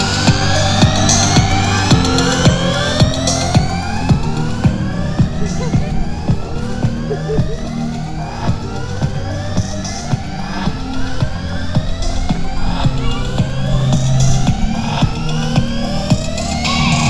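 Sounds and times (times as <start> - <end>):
low droning tones: 0.0 - 17.0
rising synthesized sweeps: 0.0 - 17.0.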